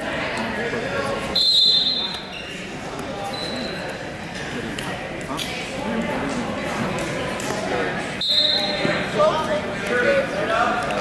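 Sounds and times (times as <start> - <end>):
indistinct chatter of many voices: 0.0 - 11.0.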